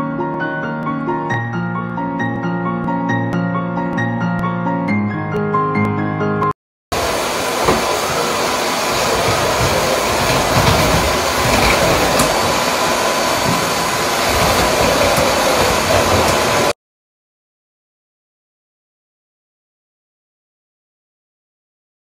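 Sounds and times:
vacuum cleaner running: 6.9s - 16.8s.

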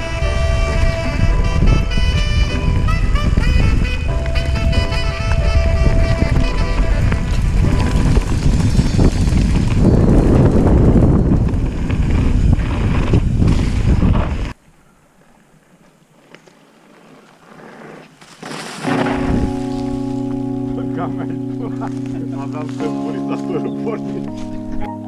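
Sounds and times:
music with long held chords: 0.0s - 8.2s, 18.9s - 25.0s
loud rushing wind: 0.0s - 14.6s, 19.0s - 20.1s
bike riding noise on a trail: 0.0s - 24.8s.

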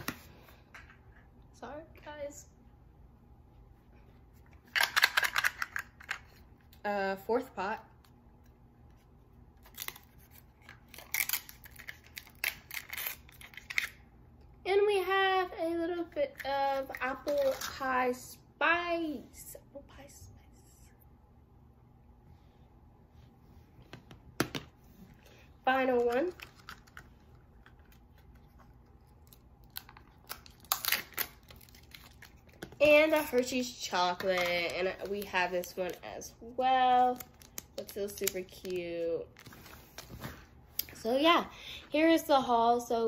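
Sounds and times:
girl talking: 1.6s - 2.6s, 6.8s - 7.9s, 14.6s - 20.9s, 25.6s - 26.4s, 32.8s - 39.4s, 40.8s - 43.0s
wrapper crinkling as peeled open: 9.6s - 14.0s, 25.9s - 40.2s.

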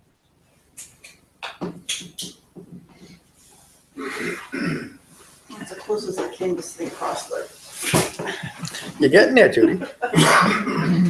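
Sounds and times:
person clearing throat: 4.0s - 5.0s, 10.1s - 11.0s.

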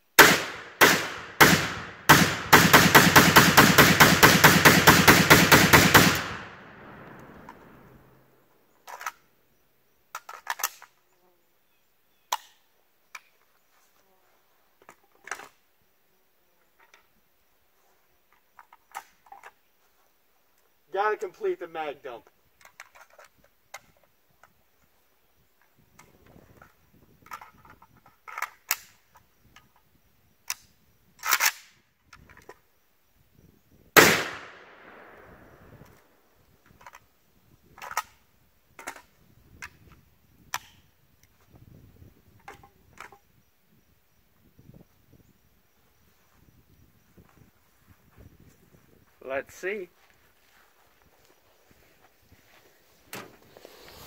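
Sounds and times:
rifle shots: 0.2s - 8.2s, 34.0s - 35.9s.

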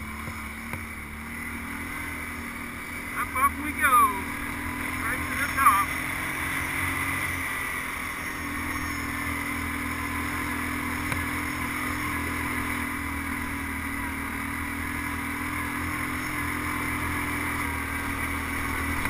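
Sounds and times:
atv engine under load: 0.0s - 19.0s.

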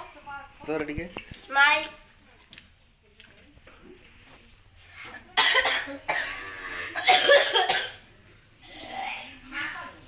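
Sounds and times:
child coughing: 5.3s - 8.0s.

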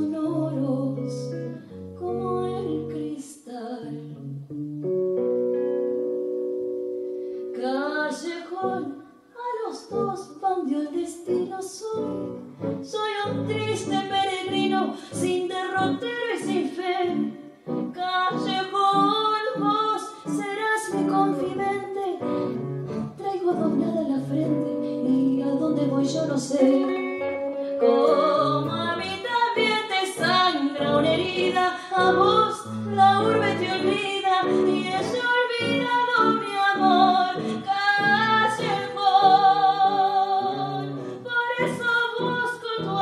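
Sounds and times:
woman singing a tango: 0.0s - 4.5s, 7.5s - 43.0s
electric guitar: 0.0s - 9.2s, 11.2s - 43.0s.

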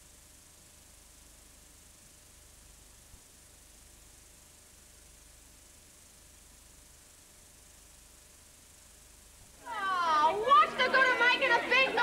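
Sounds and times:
faint tape hiss: 0.0s - 12.0s.

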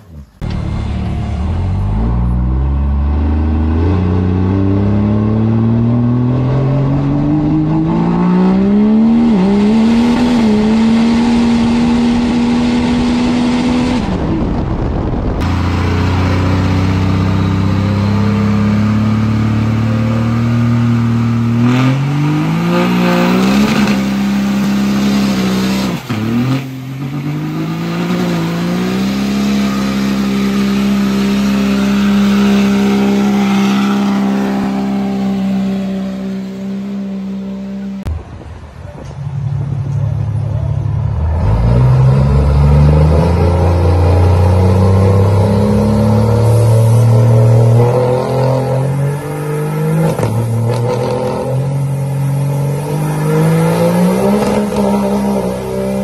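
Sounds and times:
diesel engine revving: 0.0s - 38.4s, 39.4s - 56.0s.

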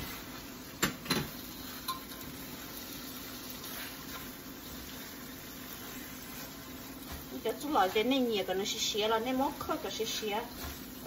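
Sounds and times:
sauce sizzling in a wok: 0.0s - 11.0s
spatula stirring: 0.0s - 11.0s.

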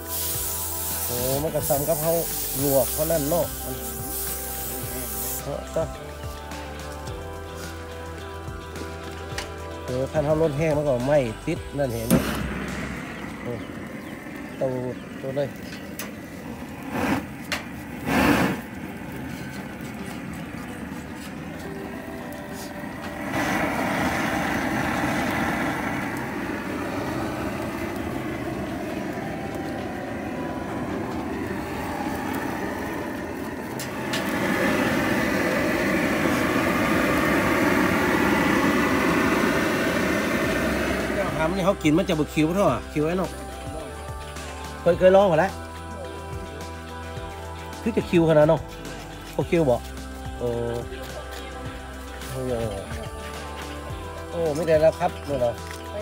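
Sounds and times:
propane torch hissing: 0.0s - 56.0s.

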